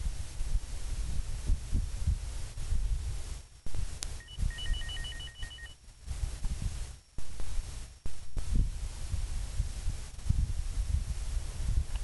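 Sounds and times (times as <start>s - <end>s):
wind rumbling on microphone: 0.0s - 12.0s
short high two-pitch beeps: 4.2s - 5.8s.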